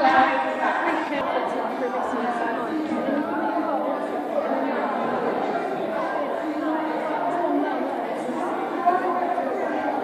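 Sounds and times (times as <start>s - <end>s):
women chatting babble: 0.0s - 10.0s.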